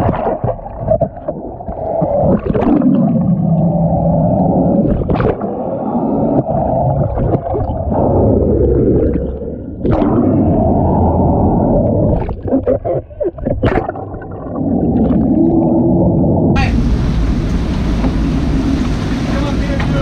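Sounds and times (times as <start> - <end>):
muffled underwater rushing water: 0.0 - 20.0.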